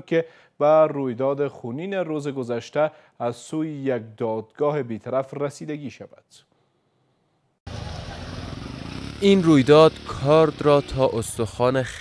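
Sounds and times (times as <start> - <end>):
street noise rush and rumble: 7.7 - 12.0.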